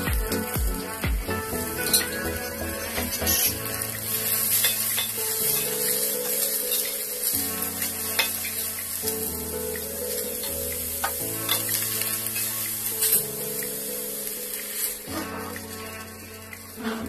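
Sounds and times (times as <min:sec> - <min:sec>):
soft background music: 0:00.0 - 0:17.0
vegetables sizzling in a pot: 0:00.0 - 0:17.0.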